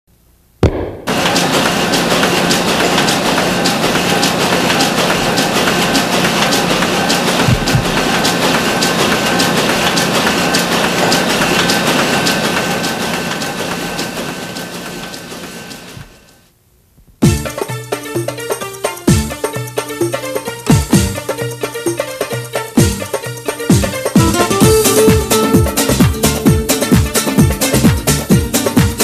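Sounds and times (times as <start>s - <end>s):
sudden hit: 0.6s - 1.4s.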